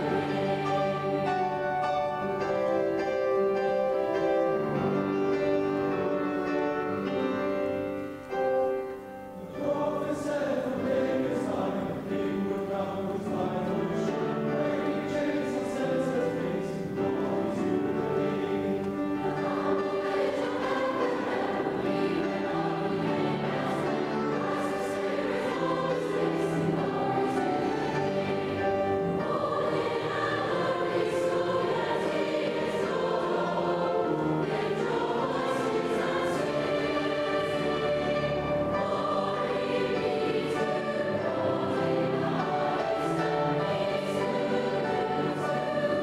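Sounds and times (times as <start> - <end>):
choir singing: 0.0 - 46.0.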